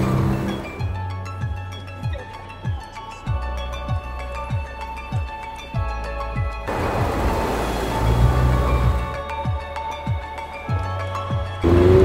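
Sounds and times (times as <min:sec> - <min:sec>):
low engine note: 0:06.7 - 0:09.2, 0:11.6 - 0:12.0
road noise hiss: 0:06.7 - 0:09.2.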